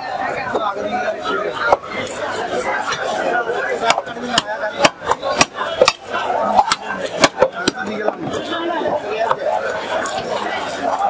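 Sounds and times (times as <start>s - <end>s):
background chatter: 0.0s - 11.0s
knife chopping fish: 3.8s - 7.9s.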